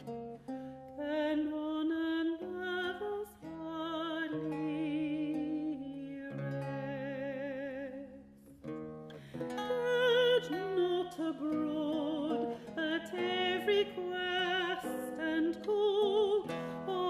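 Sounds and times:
plucked lute: 0.0 - 17.0
woman singing with vibrato: 0.9 - 8.4, 9.4 - 17.0.

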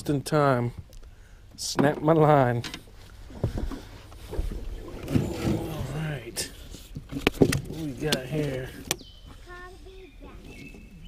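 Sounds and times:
low handling rumble: 0.0 - 11.0.

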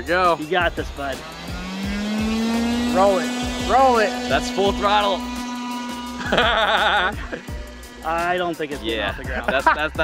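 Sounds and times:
background music: 0.0 - 10.0
person laughing: 6.2 - 7.5, 9.3 - 10.0.

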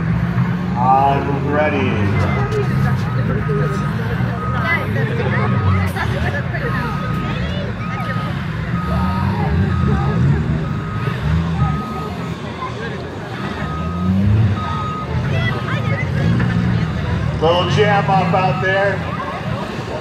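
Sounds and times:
car engines revving: 0.0 - 20.0
reversing alarm beeping: 0.8 - 19.2.

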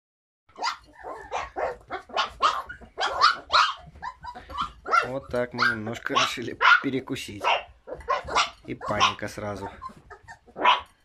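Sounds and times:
puppies yapping: 0.5 - 11.0.

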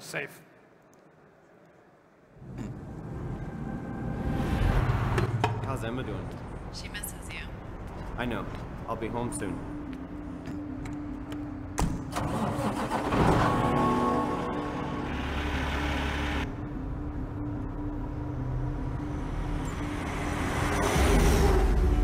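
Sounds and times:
diesel truck engine starting: 12.0 - 16.6.

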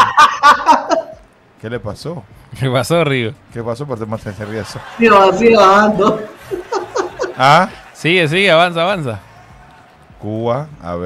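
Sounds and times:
men chuckling: 0.0 - 1.2, 4.4 - 8.0
men talking: 1.6 - 11.0.

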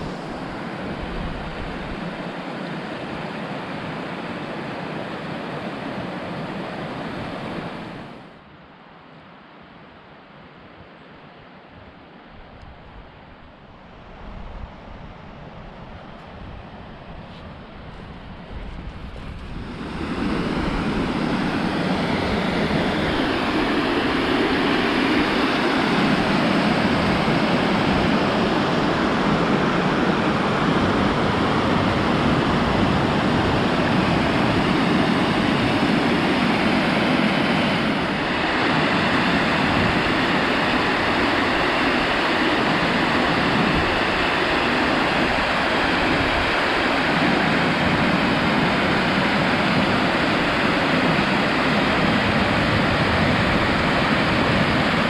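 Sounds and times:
river water rushing over weir: 0.0 - 12.3, 13.2 - 55.0.

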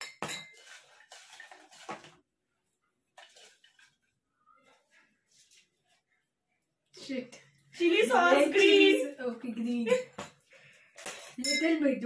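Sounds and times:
paper slips rustling: 0.5 - 2.2.

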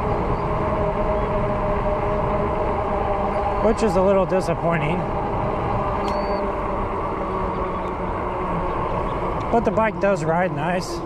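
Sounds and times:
wind rushing: 0.0 - 10.2
bike tyre hum on asphalt: 0.0 - 11.0
faint even hum: 0.0 - 11.0
high-pitched chirp: 6.0 - 6.5.

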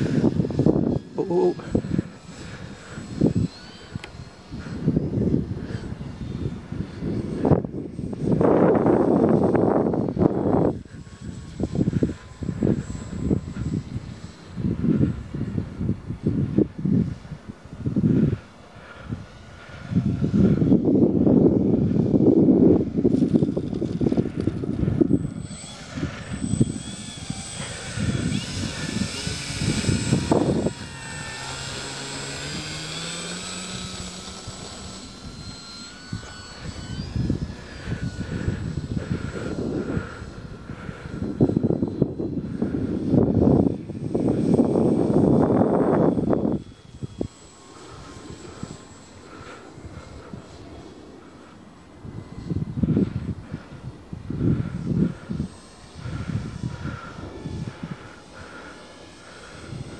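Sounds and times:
model plane motor whining: 0.0 - 59.9
wind buffeting microphone: 0.0 - 59.9.

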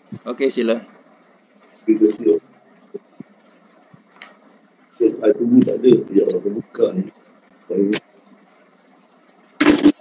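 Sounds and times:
faint audio line hiss: 0.0 - 10.0.

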